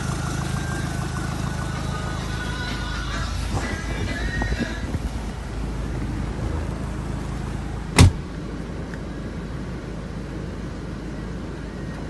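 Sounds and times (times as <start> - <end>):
diesel engine idling: 0.0 - 12.0
sharp thump: 8.0 - 8.3.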